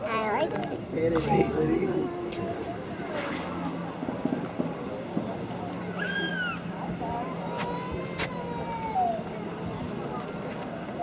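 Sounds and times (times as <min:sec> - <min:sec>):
murmur of distant voices: 0:00.0 - 0:11.0
vehicle engine hum: 0:00.5 - 0:11.0.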